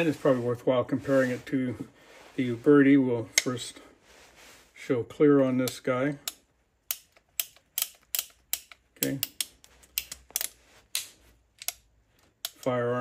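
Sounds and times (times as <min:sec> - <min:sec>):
revolver metallic clicks: 0:05.6 - 0:11.8.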